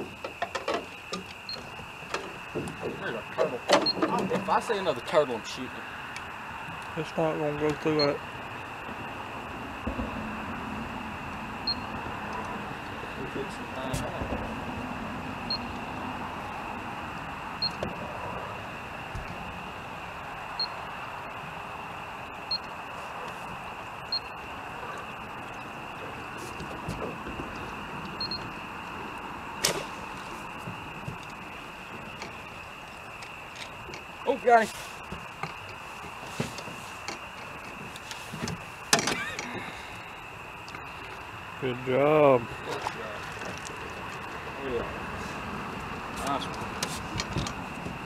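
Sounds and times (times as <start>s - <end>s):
constant high whine: 0.0s - 48.0s
even drone: 1.0s - 36.3s.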